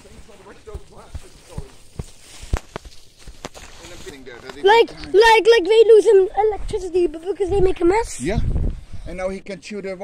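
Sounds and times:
footsteps through vegetation: 0.0 - 6.8.

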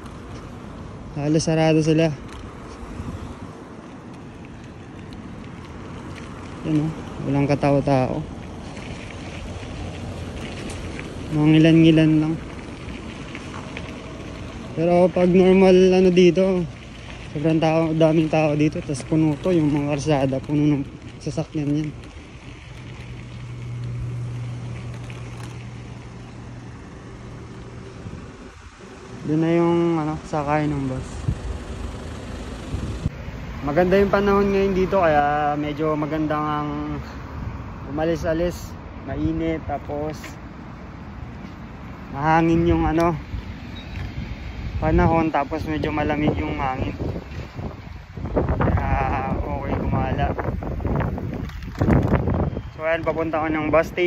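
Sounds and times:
road noise: 0.0 - 54.0
low motor hum: 16.7 - 35.0
wind rush: 31.1 - 33.6, 42.1 - 54.0
man's voice: 48.7 - 50.5.

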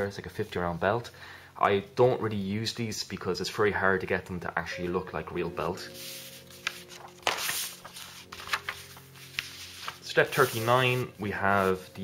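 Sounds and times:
paper pages rustling: 5.9 - 12.0.

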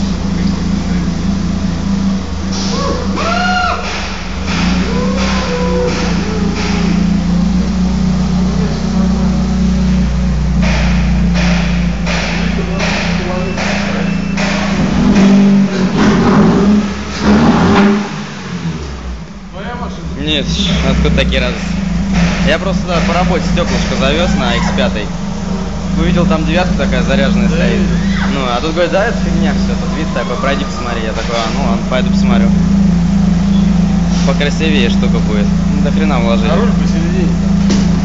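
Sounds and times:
people talking: 0.0 - 1.4, 4.5 - 11.0, 12.0 - 16.2, 19.5 - 25.2, 25.8 - 32.7, 33.4 - 38.0
car engine idling and revving: 0.0 - 38.0.

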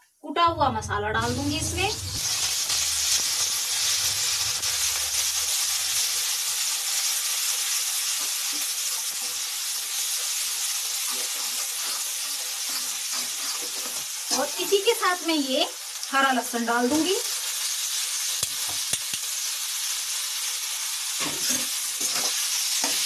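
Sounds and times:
spice paste sizzling in hot oil: 1.4 - 23.0
spatula stirring: 7.5 - 14.8.

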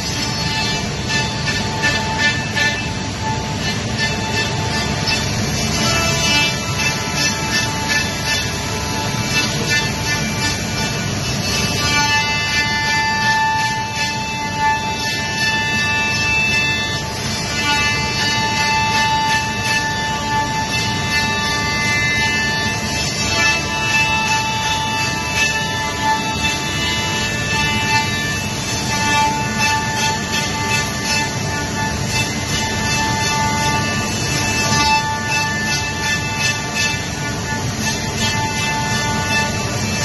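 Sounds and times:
milling spindle whine: 0.0 - 40.0
rushing machining noise: 0.0 - 40.0.

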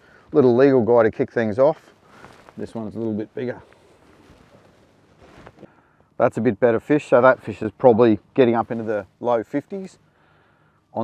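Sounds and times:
soft low sounds: 0.0 - 10.3.

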